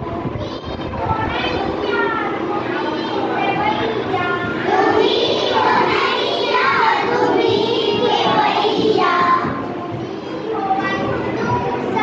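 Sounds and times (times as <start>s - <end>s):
children singing: 0.4s - 12.0s.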